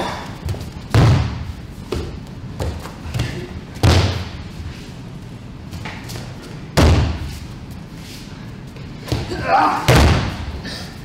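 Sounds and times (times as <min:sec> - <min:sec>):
body landing on mat thud: 0:06.8 - 0:07.3, 0:09.1 - 0:10.5.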